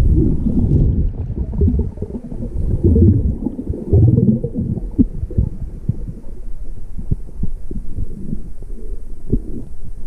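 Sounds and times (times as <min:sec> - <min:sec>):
muffled underwater rumble: 0:00.0 - 0:10.0.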